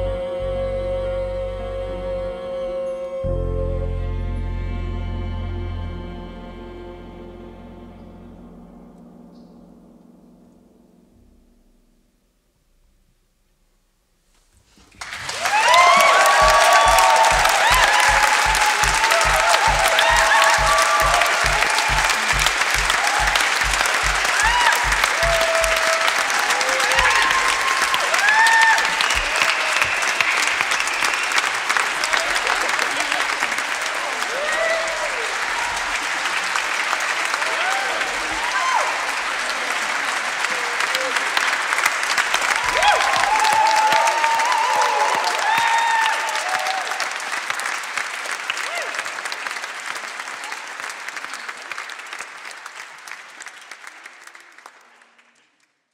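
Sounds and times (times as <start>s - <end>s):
audience applauding: 14.9s - 55.9s
whoops and cheers: 15.2s - 36.1s, 37.3s - 39.4s, 42.3s - 47.4s, 48.5s - 49.4s.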